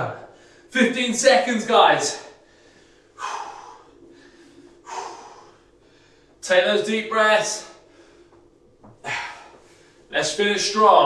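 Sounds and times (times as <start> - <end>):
man breathing hard: 2.4 - 6.4, 7.8 - 10.1.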